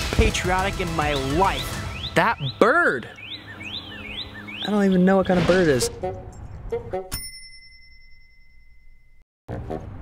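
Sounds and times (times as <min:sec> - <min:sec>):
bright bell ding: 0:07.1 - 0:09.2.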